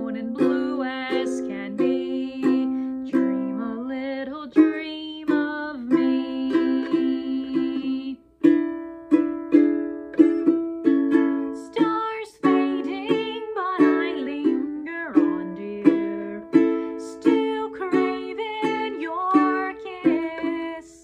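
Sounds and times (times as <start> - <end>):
woman singing: 0.0 - 8.5, 11.3 - 21.0
ukulele strumming chords: 0.0 - 21.0.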